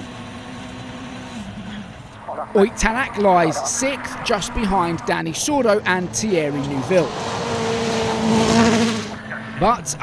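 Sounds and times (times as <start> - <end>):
rally car engine at high revs: 0.0 - 9.8.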